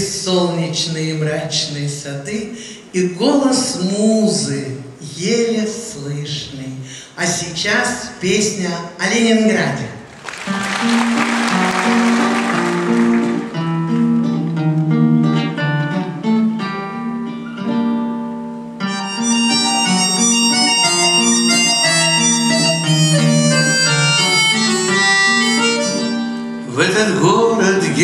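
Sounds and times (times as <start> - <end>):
band playing plucked notes: 10.1 - 17.6, 18.6 - 26.7.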